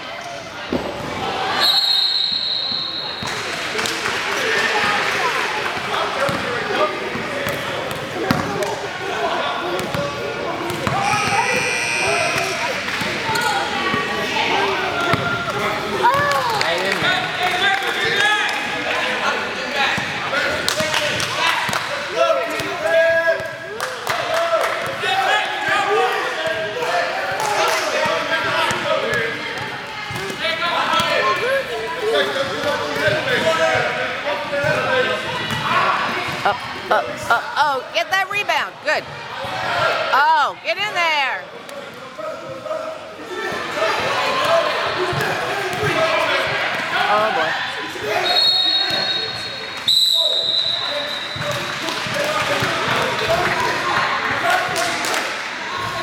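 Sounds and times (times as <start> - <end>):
voices and calls of players: 0.0 - 56.0
high whistle blast: 1.6 - 3.2.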